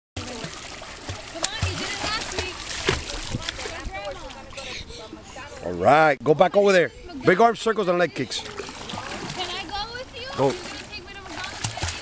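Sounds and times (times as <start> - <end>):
child splashing while swimming: 0.2 - 4.4, 8.4 - 12.0
hands slapping water: 0.2 - 4.4, 8.4 - 9.8, 10.4 - 12.0.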